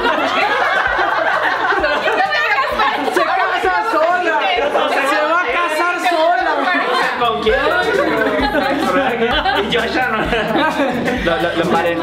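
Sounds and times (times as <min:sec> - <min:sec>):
people chattering excitedly: 0:00.0 - 0:12.0.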